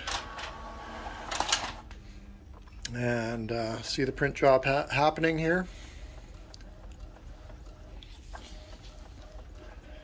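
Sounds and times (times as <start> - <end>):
faint steady hum: 0.0 - 10.0
printer mechanism clicking: 1.2 - 1.8.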